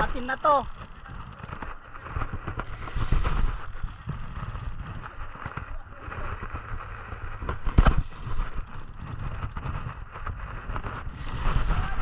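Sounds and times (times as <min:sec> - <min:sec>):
fishing reel being cranked: 0:00.0 - 0:01.8, 0:02.5 - 0:05.6, 0:07.5 - 0:12.0
handling rustle and clicks: 0:00.0 - 0:12.0
wind rumbling on microphone: 0:00.0 - 0:12.0.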